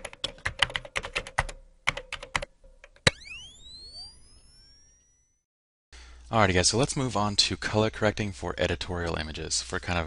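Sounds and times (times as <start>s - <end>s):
rising ringing tones: 3.1s - 5.5s.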